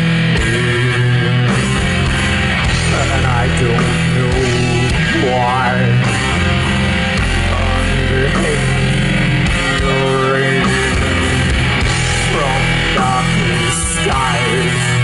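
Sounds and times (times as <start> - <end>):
doom metal band playing live: 0.0 - 15.0.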